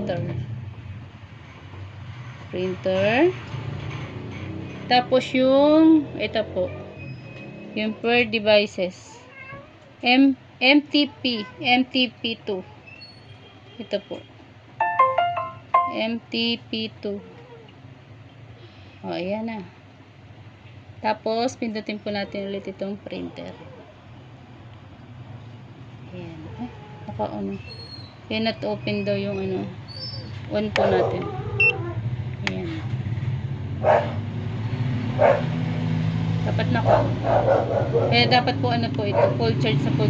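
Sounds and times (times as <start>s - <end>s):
electronic notification jingle: 14.8s - 16.2s
dog barking: 30.8s - 31.8s, 33.8s - 34.2s, 35.2s - 35.6s, 36.8s - 38.5s, 39.1s - 39.5s.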